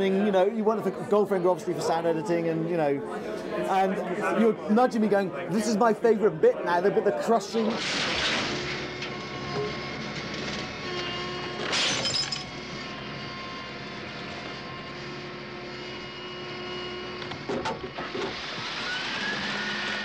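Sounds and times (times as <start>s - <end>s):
glass breaking: 11.6s - 12.5s.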